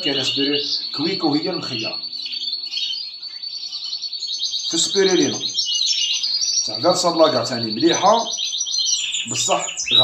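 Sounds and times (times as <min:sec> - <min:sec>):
songbirds trilling and chirping: 0:00.0 - 0:10.0.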